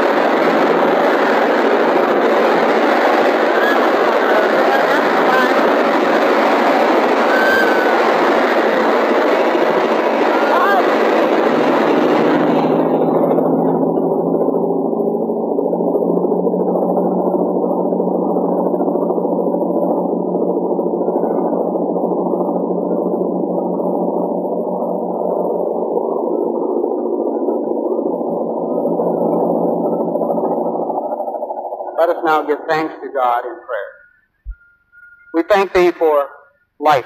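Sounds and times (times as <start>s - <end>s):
muffled engine drone: 0.0s - 37.0s.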